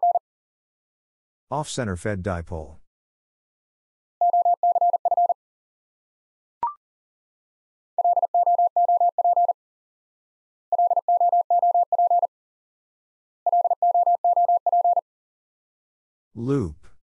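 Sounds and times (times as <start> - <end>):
morse code tone: 4.2 - 5.4, 8.0 - 9.6, 13.5 - 15.0.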